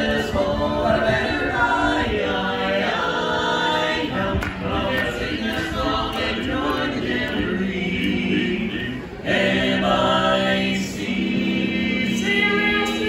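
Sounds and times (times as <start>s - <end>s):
men singing a cappella harmony: 0.0s - 13.0s.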